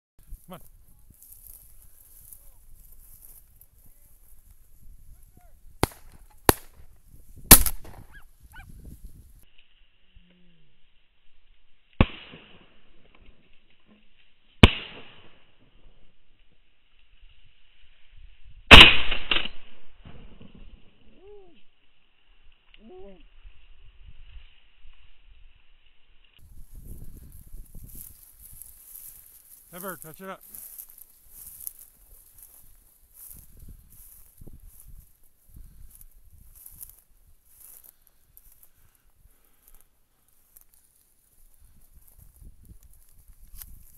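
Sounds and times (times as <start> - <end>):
shotgun shots: 5.8 - 6.8, 7.5 - 8.2, 12.0 - 12.8, 14.6 - 15.4, 18.7 - 20.7.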